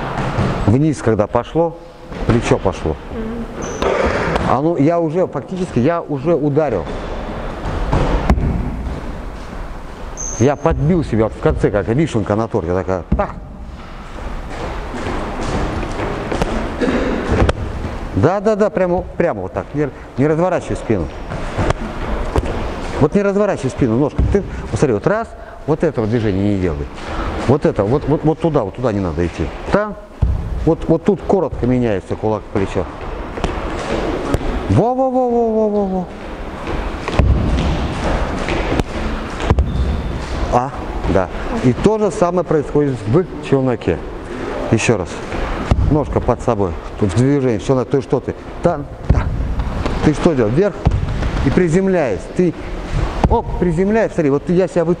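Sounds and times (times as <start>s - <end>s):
sharp thuds: 6.8s - 9.6s, 30.2s - 30.8s, 36.6s - 41.4s, 45.2s - 46.1s, 49.0s - 51.6s.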